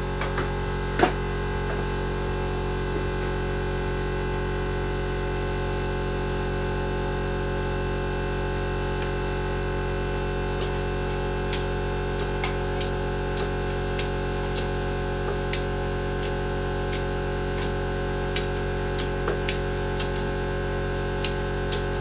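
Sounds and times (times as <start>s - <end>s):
electrical hum: 0.0s - 22.0s.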